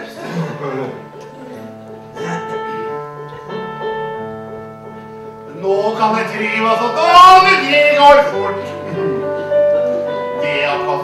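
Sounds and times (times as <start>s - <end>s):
piano chords: 0.0s - 11.0s.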